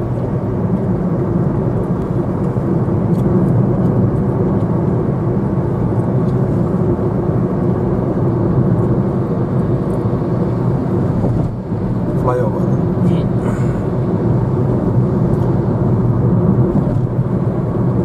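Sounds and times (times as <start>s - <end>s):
car engine and tyre noise: 0.0s - 18.0s.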